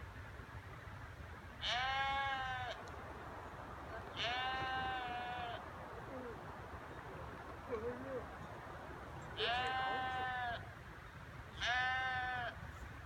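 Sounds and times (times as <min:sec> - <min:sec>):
sheep bleating: 0:01.6 - 0:02.8, 0:04.1 - 0:05.6, 0:09.4 - 0:10.7, 0:11.6 - 0:12.6.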